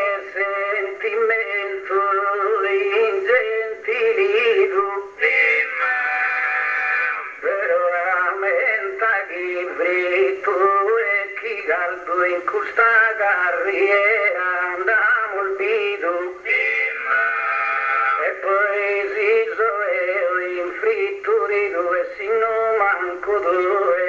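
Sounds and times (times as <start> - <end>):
man singing unaccompanied: 0.0 - 24.0.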